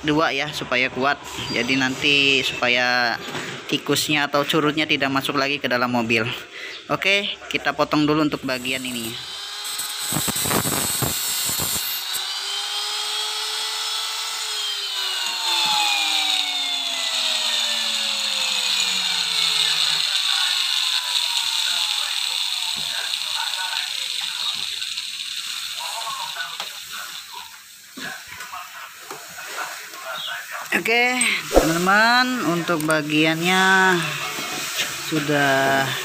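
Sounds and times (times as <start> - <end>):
angle grinder whine: 8.4 - 27.6
high-pitched hiss: 8.5 - 12.2, 21.6 - 34.1.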